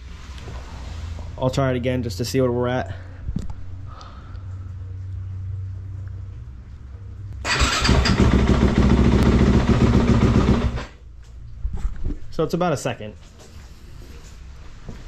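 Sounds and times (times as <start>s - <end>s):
electric starter cranking: 7.4s - 11.0s
motorcycle engine running: 7.5s - 10.9s.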